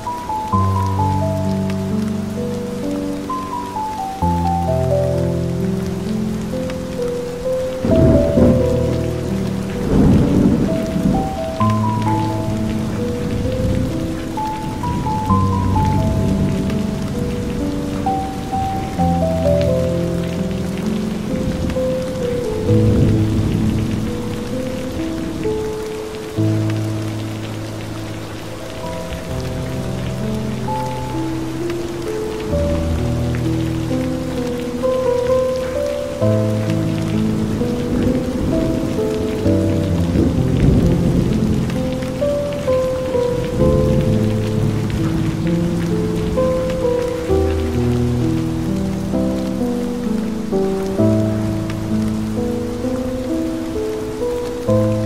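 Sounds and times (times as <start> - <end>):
calm ambient music: 0.0 - 55.0
steady rain falling: 0.0 - 55.0
low rumbles of thunder: 5.6 - 50.1.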